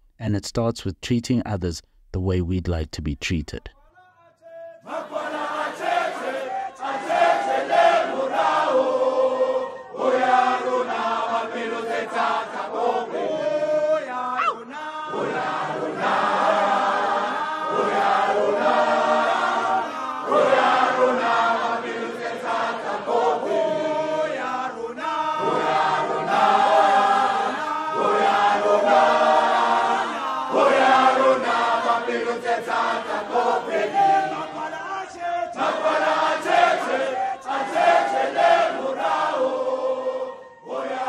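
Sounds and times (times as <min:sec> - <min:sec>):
choir singing a chant-like song: 0:04.4 - 0:41.0.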